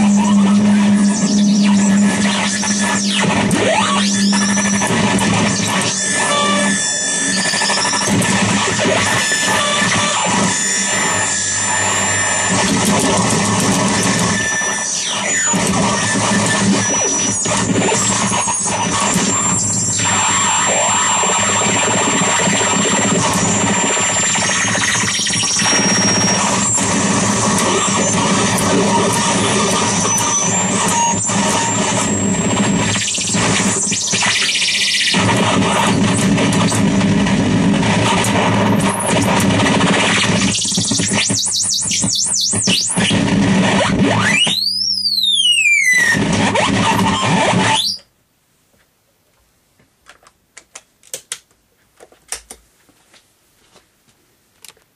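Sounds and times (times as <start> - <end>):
wall of distorted noise: 0.0 - 54.9.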